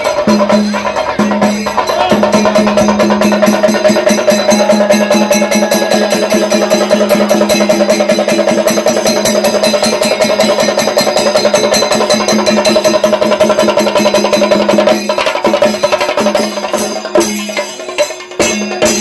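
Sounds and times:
drum ensemble playing fast: 0:00.0 - 0:19.0
ringing cymbals: 0:00.0 - 0:19.0.

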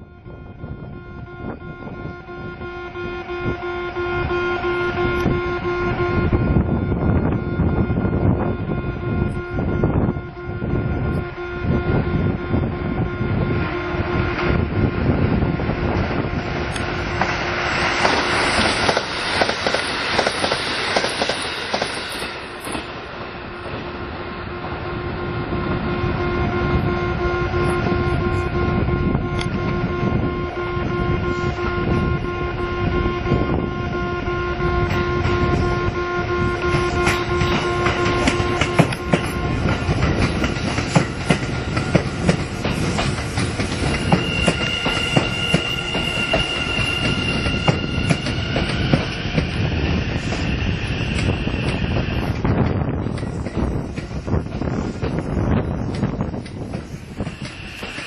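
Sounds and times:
electric train passing: 0:00.0 - 0:58.0
steady tones: 0:00.0 - 0:58.0
hiss: 0:56.0 - 0:58.0.

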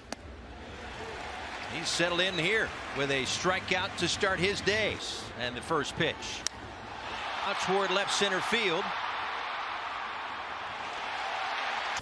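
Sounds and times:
ballpark crowd noise: 0:00.1 - 0:12.0.

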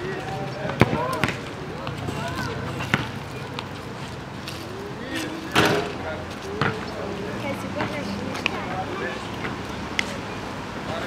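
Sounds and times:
basketball bouncing on asphalt: 0:00.7 - 0:03.2, 0:06.6 - 0:06.8.

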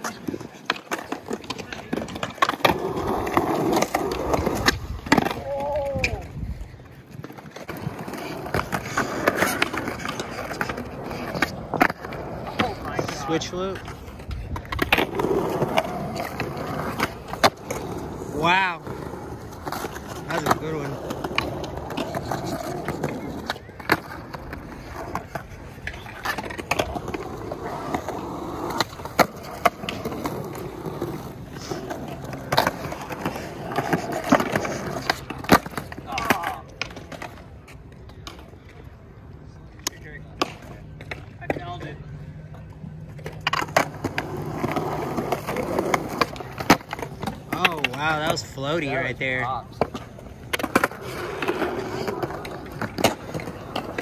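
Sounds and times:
skateboard tails popping: 0:00.0 - 0:38.9, 0:42.6 - 0:54.0
skateboard wheels rolling on concrete: 0:00.0 - 0:54.0
skateboards slapping down: 0:00.0 - 0:54.0.

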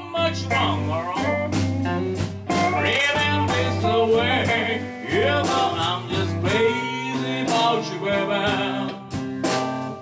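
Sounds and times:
amplified blues harmonica: 0:00.0 - 0:10.0
drums: 0:00.0 - 0:10.0
electric guitars: 0:00.0 - 0:10.0.

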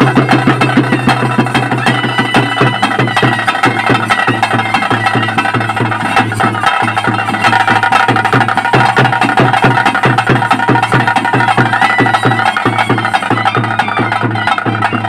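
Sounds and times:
drums beating fast rhythm: 0:00.0 - 0:15.0
held pitched tone: 0:00.0 - 0:15.0.

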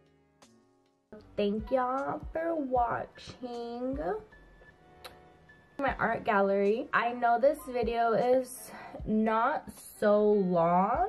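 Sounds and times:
woman speaking: 0:01.2 - 0:04.3, 0:05.8 - 0:11.0.

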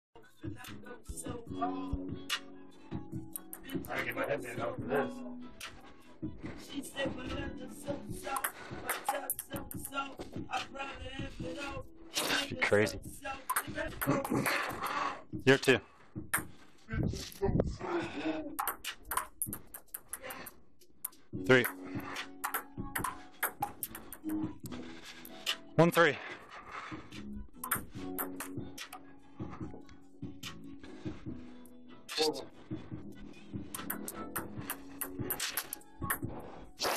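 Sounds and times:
television music and talk: 0:00.2 - 0:36.9
table tennis ball hits: 0:18.6 - 0:20.5, 0:33.8 - 0:36.3.

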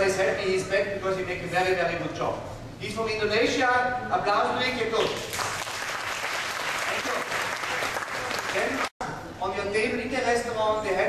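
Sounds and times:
audience applauding: 0:05.3 - 0:08.9.

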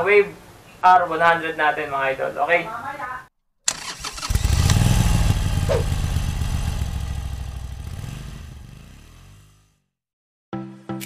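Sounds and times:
motorcycle engine running: 0:03.8 - 0:09.9.

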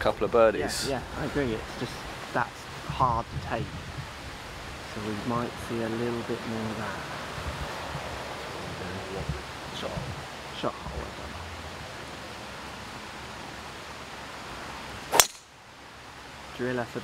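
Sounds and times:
outdoor background hiss: 0:00.0 - 0:17.0
wind rumble on microphone: 0:01.0 - 0:12.3.

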